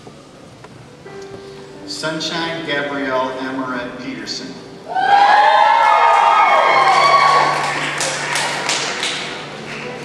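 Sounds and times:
audience whooping and calling out: 4.9 - 9.3
short sharp claps: 7.6 - 10.0.

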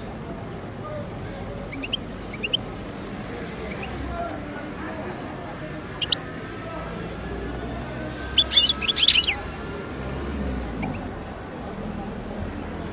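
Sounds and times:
low street hum: 0.0 - 12.9
bird chirping and twittering: 1.6 - 2.8, 3.5 - 4.0, 6.0 - 6.3, 8.2 - 9.5, 10.8 - 11.2.

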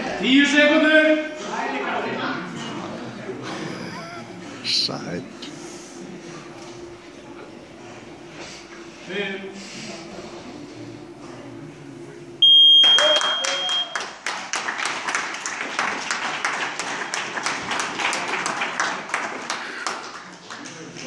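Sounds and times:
high-pitched timer buzzer beep: 12.4 - 14.0
audience applause: 12.8 - 21.0.

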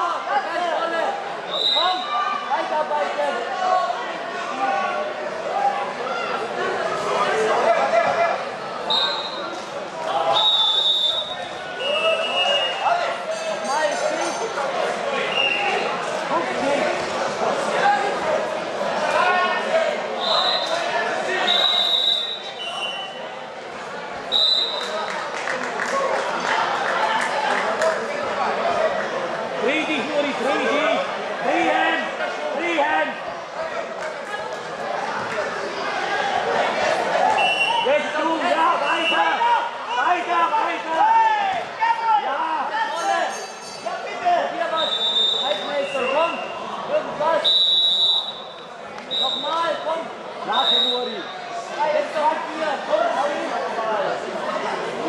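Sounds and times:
high whistle blasts: 10.3 - 12.8, 21.4 - 23.2, 44.8 - 46.5, 47.4 - 49.5.

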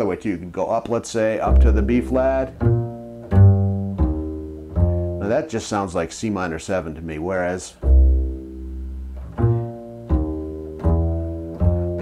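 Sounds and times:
double bass plucked notes: 1.3 - 6.1, 7.0 - 12.0.

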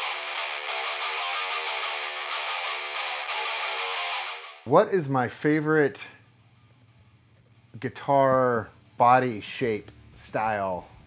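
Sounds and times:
distorted electric guitar riff: 0.0 - 4.7.

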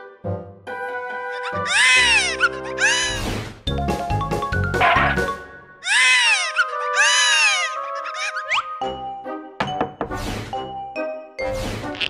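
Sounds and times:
background music: 0.0 - 12.0
whiny cartoon character cries: 1.3 - 3.2, 5.8 - 8.6.

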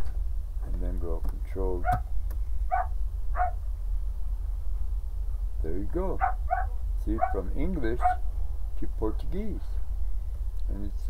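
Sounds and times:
steady low hum: 0.0 - 11.0
small dog yipping: 2.7 - 3.6, 6.2 - 7.4, 8.0 - 8.2.

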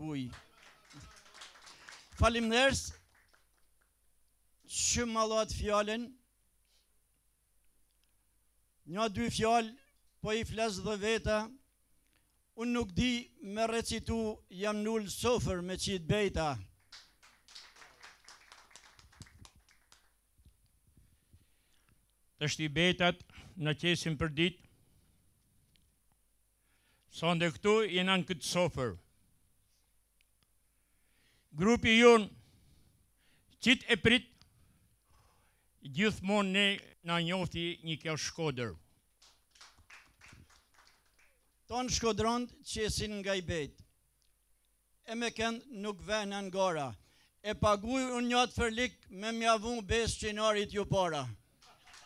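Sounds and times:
scattered hand claps: 0.2 - 4.0, 16.8 - 20.2, 39.2 - 41.6, 51.6 - 52.0.

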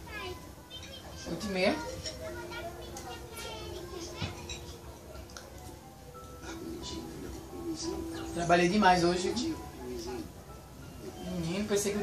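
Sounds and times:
faint television voices: 0.0 - 12.0.

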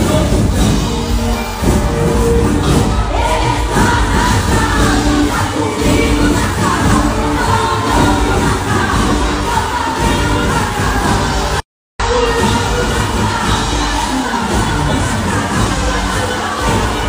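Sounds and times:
church worship music with singing: 0.0 - 17.0
crowd singing and cheering: 0.0 - 17.0.

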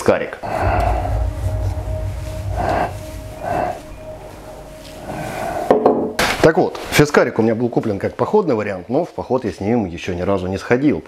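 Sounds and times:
deep low rumble: 0.4 - 6.8
steady held tone: 0.4 - 7.2.

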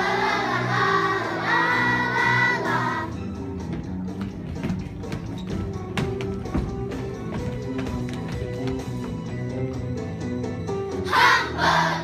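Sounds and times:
instrumental stage musical music: 0.0 - 12.0.

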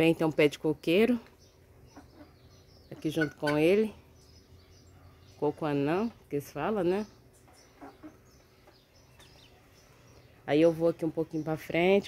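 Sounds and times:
faint bird chirps: 1.2 - 5.5.

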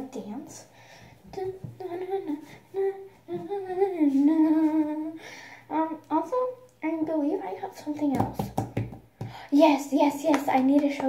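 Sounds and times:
girl humming: 1.3 - 5.2.

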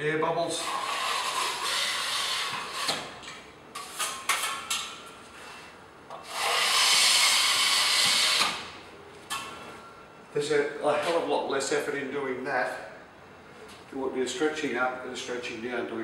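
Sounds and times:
trowel scraping wet joint: 0.6 - 5.0, 6.2 - 8.6.

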